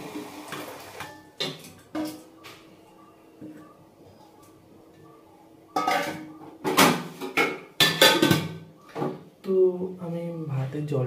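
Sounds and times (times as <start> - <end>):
metal cookware clanging: 1.0 - 2.4, 5.7 - 9.2.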